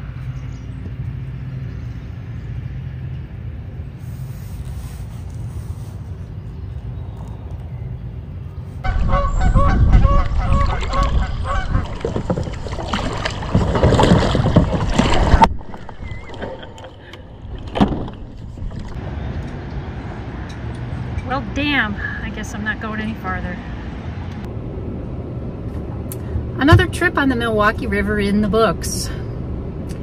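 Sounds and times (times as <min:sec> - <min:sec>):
low wind rumble: 0:00.0 - 0:30.0
geese honking: 0:08.8 - 0:12.0.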